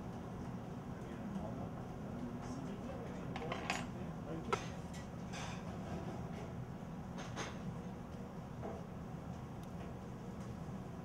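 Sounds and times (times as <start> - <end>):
low kitchen hum: 0.0 - 11.0.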